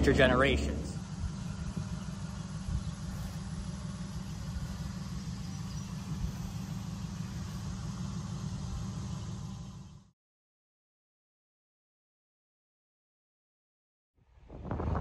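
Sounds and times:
fluttering low rumble: 0:00.0 - 0:10.1.

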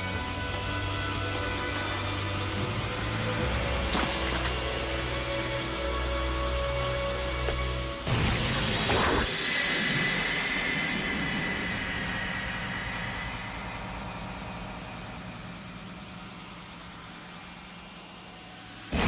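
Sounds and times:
faint high whine: 0:00.0 - 0:19.0
roaring rush of noise: 0:08.1 - 0:19.0.

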